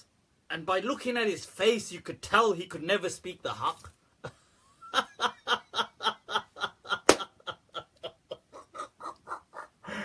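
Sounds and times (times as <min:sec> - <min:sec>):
man laughing: 0:04.2 - 0:10.0.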